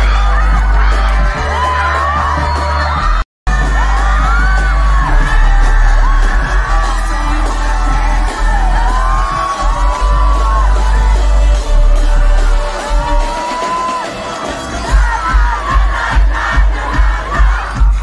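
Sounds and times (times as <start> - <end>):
amplified music with heavy bass: 0.0 - 18.0
voices yelling and singing: 0.0 - 18.0.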